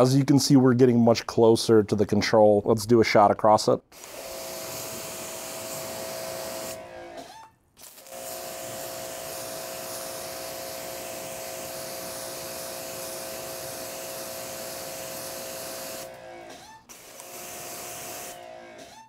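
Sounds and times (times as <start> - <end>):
pump motor humming: 4.0 - 7.3, 7.9 - 19.0
water spray hissing: 9.3 - 18.4.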